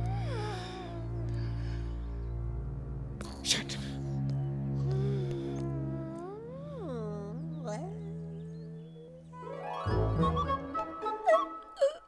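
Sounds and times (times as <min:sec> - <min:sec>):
low drone of background music: 0:00.0 - 0:12.0.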